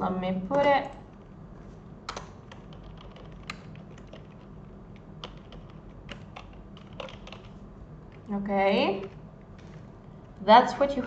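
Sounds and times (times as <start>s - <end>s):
low steady background hum: 0.0s - 11.0s
computer keyboard key clicks: 2.1s - 7.5s.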